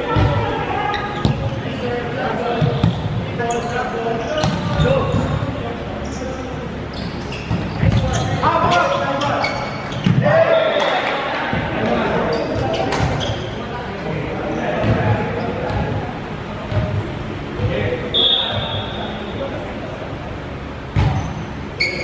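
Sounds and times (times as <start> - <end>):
players calling and shouting: 0.0 - 22.0
volleyball being hit: 20.9 - 21.3.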